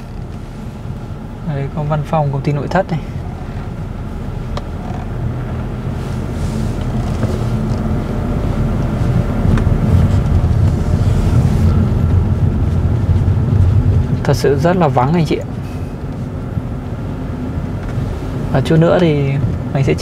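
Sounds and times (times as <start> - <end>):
vehicle engine hum and road noise: 0.0 - 20.0.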